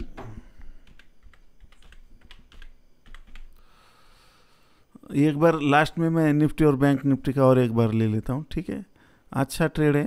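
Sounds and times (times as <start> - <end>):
typing on computer keyboard: 0.6 - 3.6.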